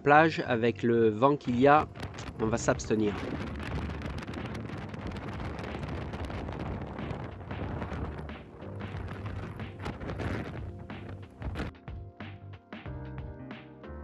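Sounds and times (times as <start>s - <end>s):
faint background music: 0.0s - 5.7s
wind buffeting microphone: 1.5s - 11.7s
surf crashing: 2.0s - 11.7s.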